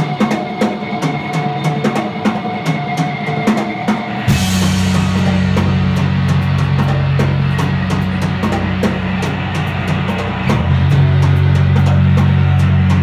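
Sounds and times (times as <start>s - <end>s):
distorted electric guitar: 0.0s - 13.0s
drum kit and cymbal hits: 0.0s - 13.0s
bass guitar: 4.1s - 13.0s.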